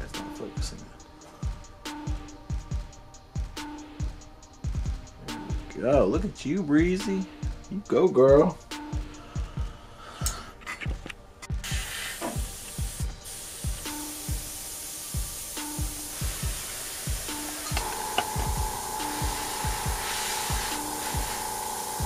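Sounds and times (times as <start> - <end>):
background music with beat: 0.0 - 22.0
airbrush hissing: 11.6 - 22.0.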